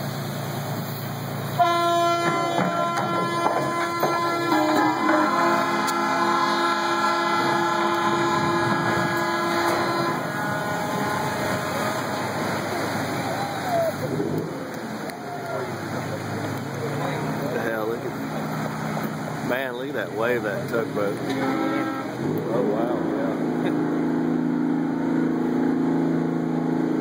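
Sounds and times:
water rushing and splashing: 0.0 - 27.0
ship horn blast: 1.5 - 15.1, 20.6 - 27.0
people's voices: 4.2 - 23.9.

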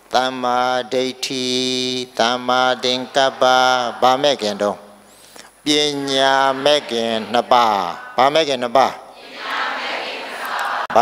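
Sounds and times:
man chanting into a microphone: 0.0 - 5.0, 5.6 - 9.2.

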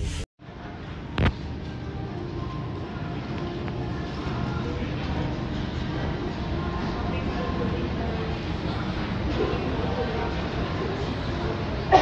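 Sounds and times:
low indoor rumble: 0.4 - 12.0.

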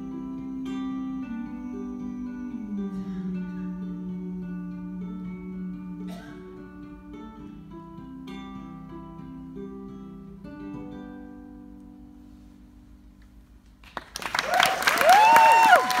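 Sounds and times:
ukulele plucking: 0.0 - 12.5
audience applause and cheering: 13.8 - 16.0.

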